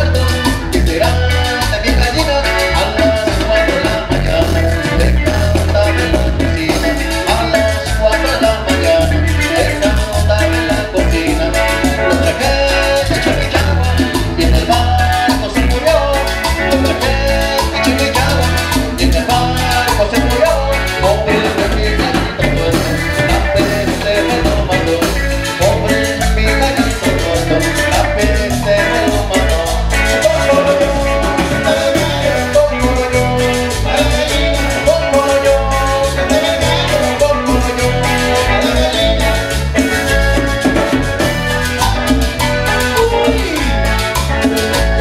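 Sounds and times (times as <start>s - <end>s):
accordion: 0.0s - 45.0s
congas: 0.0s - 45.0s
drum kit: 0.0s - 45.0s
electric bass: 0.0s - 45.0s
electric guitar: 0.0s - 45.0s.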